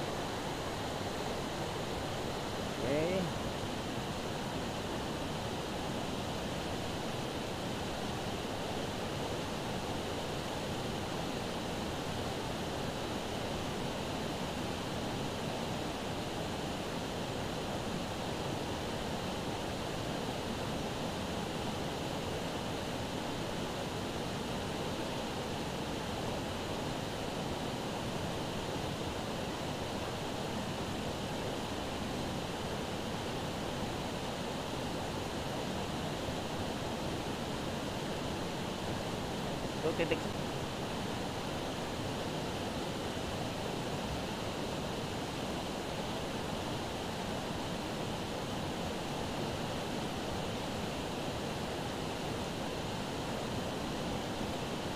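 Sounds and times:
river rushing over rocks: 0.0 - 54.9.

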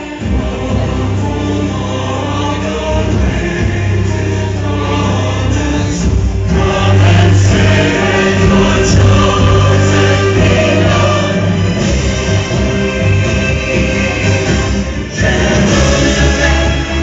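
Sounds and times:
choir singing gospel song: 0.0 - 17.0
steady low bass: 0.2 - 17.0.

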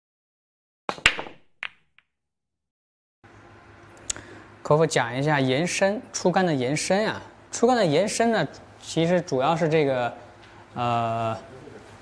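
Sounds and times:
billiard balls clicking: 0.9 - 1.8.

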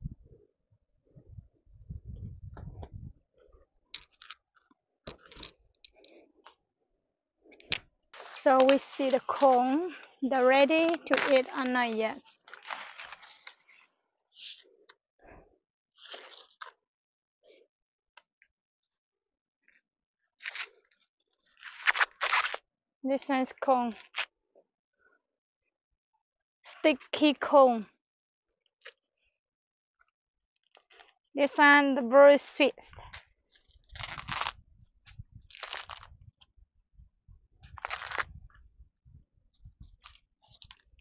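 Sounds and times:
corn husk ripping: 33.8 - 34.6, 35.5 - 36.2, 37.8 - 38.3.

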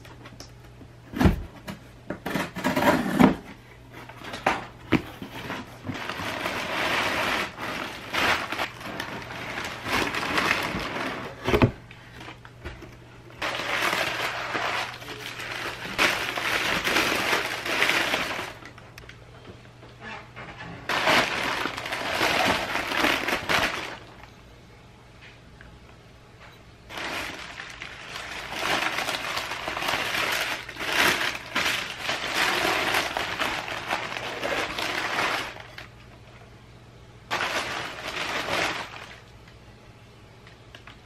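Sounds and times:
packing paper crinkling: 5.2 - 12.6, 13.4 - 18.9, 20.8 - 24.3, 26.9 - 36.0, 37.3 - 39.4.

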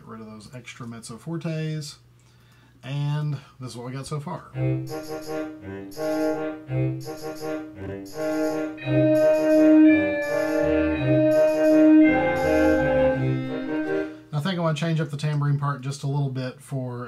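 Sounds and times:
wind and brass chords: 4.6 - 14.3.

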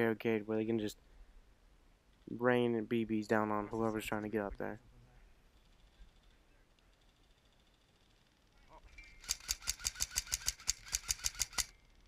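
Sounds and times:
airsoft gun firing full-auto: 9.2 - 11.8.

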